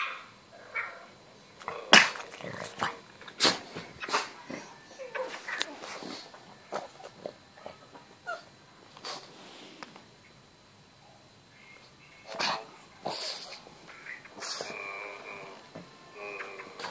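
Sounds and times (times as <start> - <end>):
dog barking and huffing: 0.0 - 6.3.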